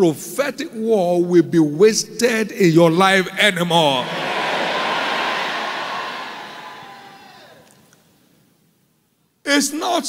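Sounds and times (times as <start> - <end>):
crowd cheering and shouting: 4.0 - 7.7.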